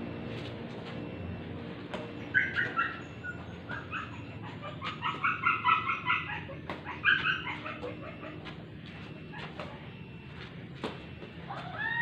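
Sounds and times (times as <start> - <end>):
bird calling: 2.2 - 9.8.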